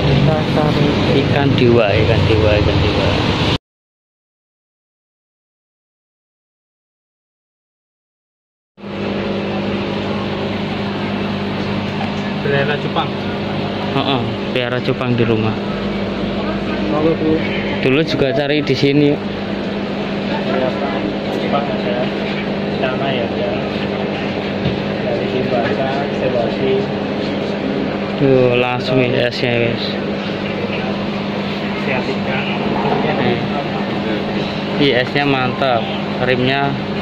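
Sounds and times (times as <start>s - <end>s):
people talking indistinctly: 0.0s - 3.2s, 9.6s - 36.8s
aquarium air pumps humming: 0.0s - 3.6s, 8.8s - 37.0s
busy background noise: 8.9s - 37.0s.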